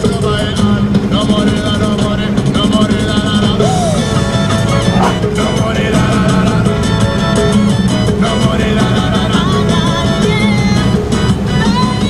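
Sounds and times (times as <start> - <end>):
music with steady beat on radio: 0.0 - 12.0.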